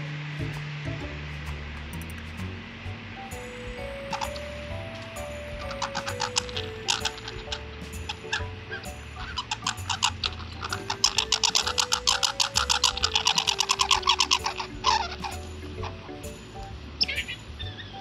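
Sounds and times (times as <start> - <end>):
light background music: 0.0 - 18.0
squirrel chattering rattle: 3.3 - 17.9.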